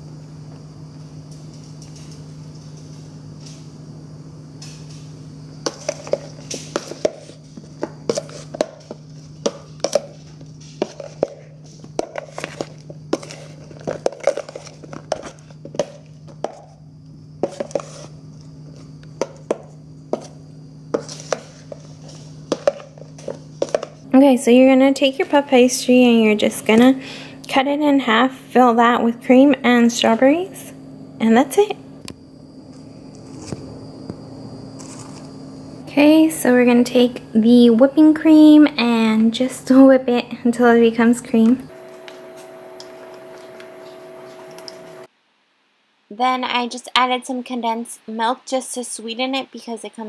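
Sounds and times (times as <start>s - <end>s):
steady low hum: 0.0s - 50.0s
spoon knocking plastic bowl: 22.5s - 23.9s.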